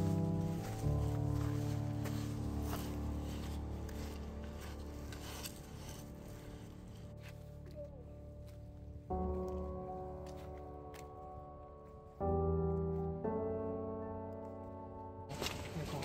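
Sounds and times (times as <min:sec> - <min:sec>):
sustained music chord: 0:00.0 - 0:16.0.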